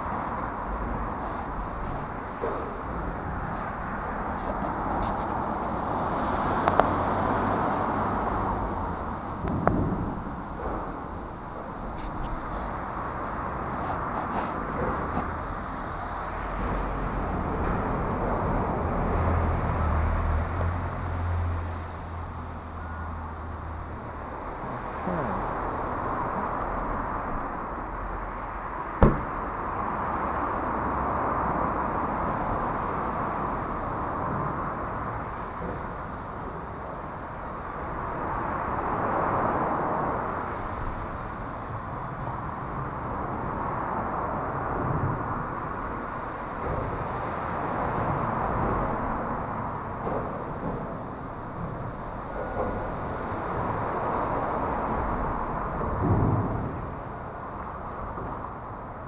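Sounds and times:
deep traffic rumble: 0.0 - 59.0
road traffic noise: 0.0 - 59.0.

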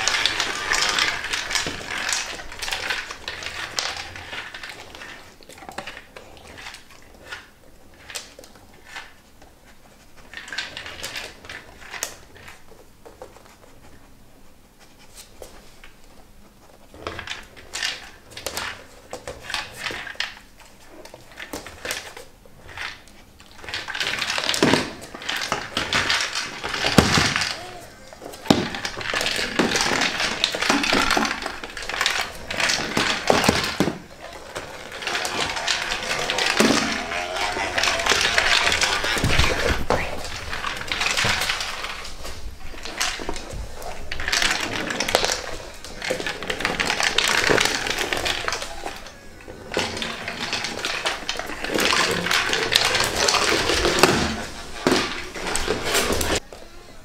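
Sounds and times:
plastic ball rattling on floor: 0.0 - 13.7, 16.9 - 56.8.

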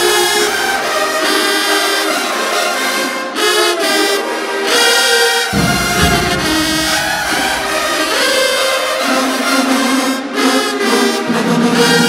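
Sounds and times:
marching band brass chords: 3.8 - 9.4.

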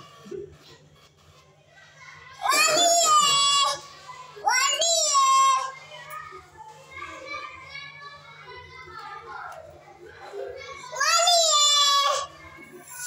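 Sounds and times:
child's high-pitched call: 2.4 - 5.9, 10.9 - 12.3.

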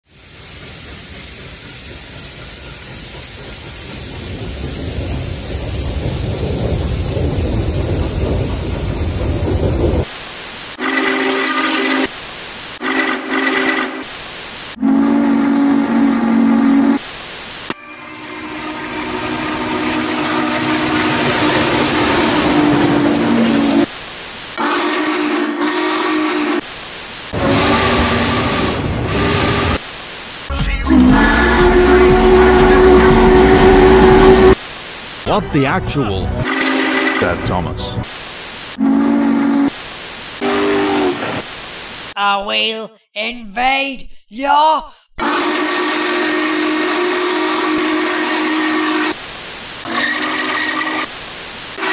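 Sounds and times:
steam locomotive hissing steam: 0.0 - 35.8, 36.4 - 42.2, 45.2 - 51.9.

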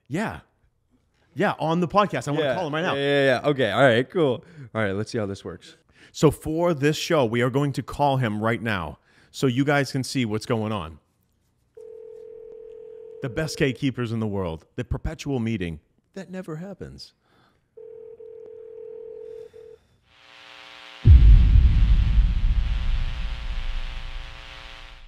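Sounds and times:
telephone ringback tone: 11.8 - 13.5, 17.8 - 19.8
static hiss: 20.2 - 25.0
dark buzzing drone: 21.1 - 25.0
low rumble: 21.1 - 25.0.

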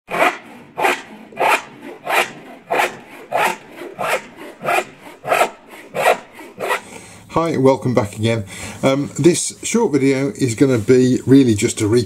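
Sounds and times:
hand saw cutting wood: 0.1 - 7.1.

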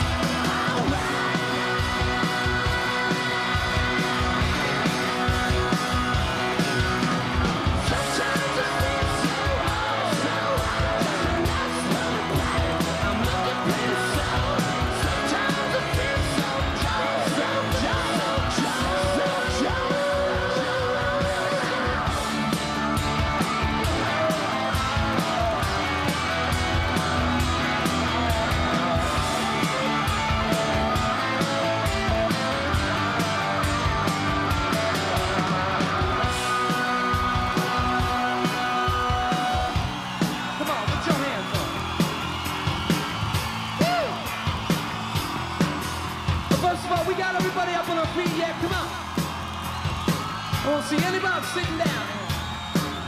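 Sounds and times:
people yelling: 0.0 - 53.0
rock band playing loudly: 0.0 - 53.0.

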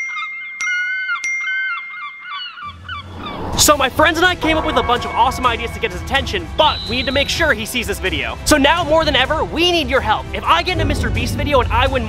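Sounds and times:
gliding sliding melody: 2.8 - 7.4
sharp attacks: 3.1 - 7.2
bell-like struck notes: 4.3 - 7.8.

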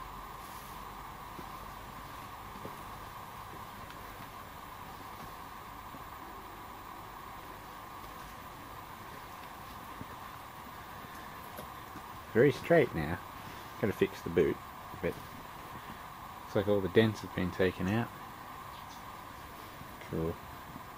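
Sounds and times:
heater running: 0.0 - 20.9.

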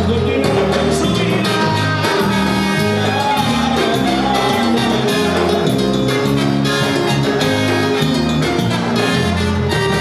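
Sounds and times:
live band playing dance music: 0.0 - 10.0.

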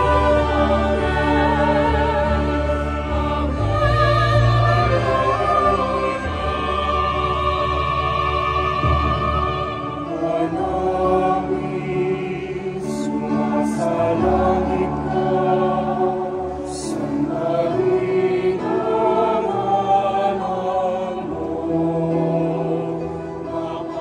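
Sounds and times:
chamber choir singing: 0.0 - 24.0.

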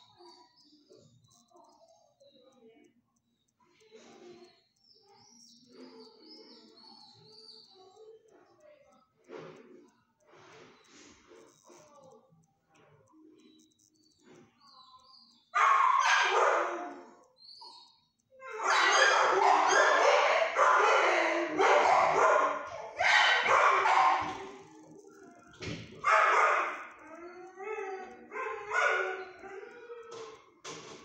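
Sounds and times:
dogs barking: 15.5 - 17.8, 18.4 - 30.4.

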